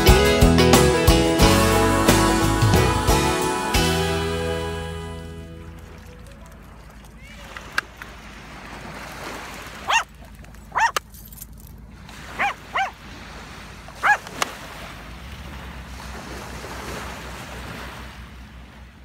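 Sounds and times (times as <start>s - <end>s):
small waves on the shore: 5.5s - 19.0s
small dog yapping: 9.8s - 10.1s, 10.7s - 11.1s, 12.3s - 13.0s, 14.0s - 14.4s.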